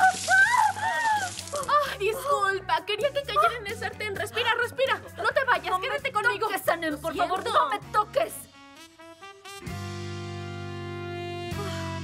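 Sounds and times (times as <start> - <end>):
woman screaming: 0.0 - 2.0
background music: 0.0 - 12.0.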